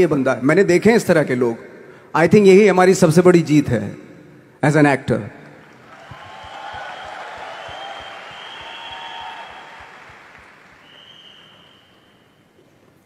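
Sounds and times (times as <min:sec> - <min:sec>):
audience applauding: 0:05.6 - 0:12.2.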